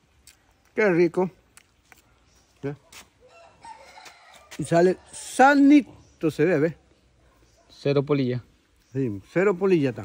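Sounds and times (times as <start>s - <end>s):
faint rooster crowing: 3.2s - 5.4s.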